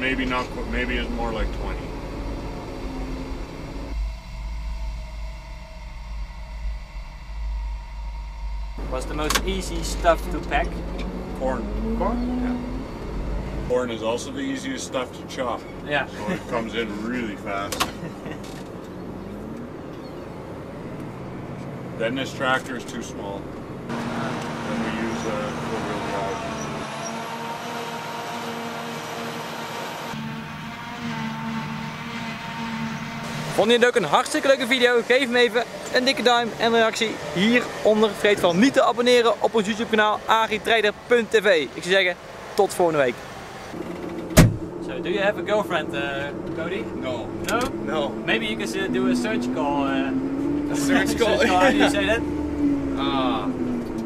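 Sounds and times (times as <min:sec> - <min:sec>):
diesel farm machines running: 0:00.0 - 0:50.1
tractor engine rumbling: 0:00.0 - 0:54.0.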